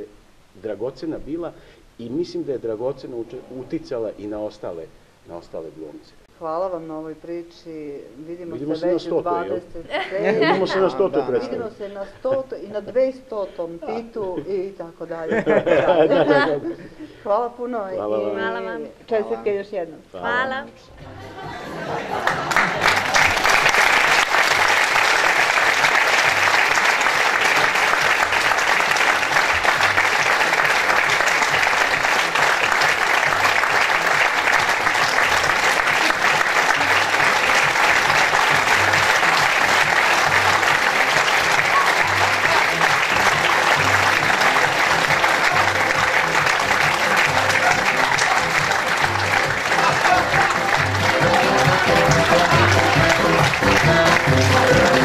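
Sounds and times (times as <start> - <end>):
audience applauding: 21.4 - 55.0
music with a regular beat: 36.8 - 55.0.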